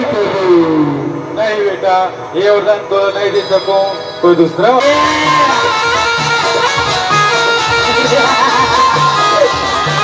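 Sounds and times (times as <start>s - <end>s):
man's amplified long cry: 8.1s - 10.0s.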